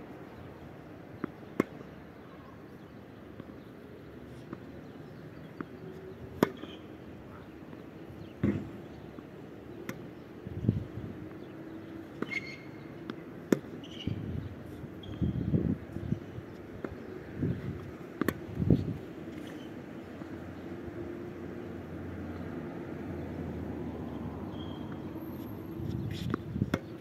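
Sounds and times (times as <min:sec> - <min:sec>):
tennis ball struck by racket: 0:06.3 - 0:06.8, 0:08.4 - 0:08.8, 0:13.1 - 0:14.1, 0:17.8 - 0:18.6, 0:26.2 - 0:27.0.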